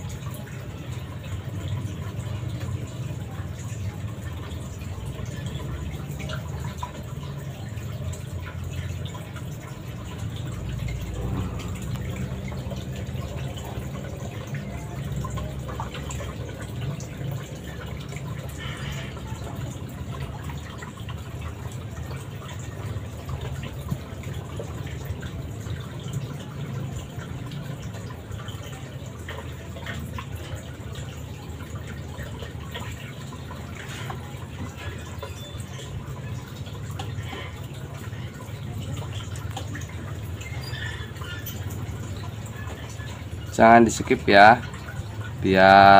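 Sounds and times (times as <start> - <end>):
filter water splashing into tank: 0.0 - 45.9
low hum: 10.0 - 14.6.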